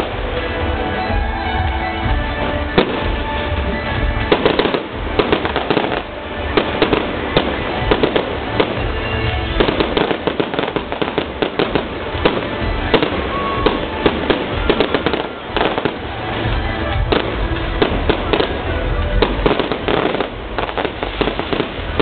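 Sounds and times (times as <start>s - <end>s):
fireworks bangs and pops: 0.0s - 22.0s.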